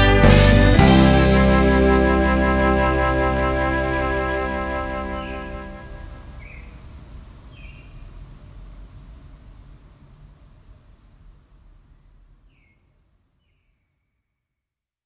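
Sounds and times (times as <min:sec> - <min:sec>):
low steady outdoor noise: 0:00.0 - 0:15.0.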